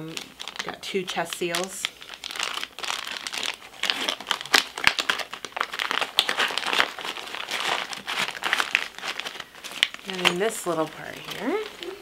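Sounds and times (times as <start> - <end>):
plastic packets crinkling: 0.0 - 12.0.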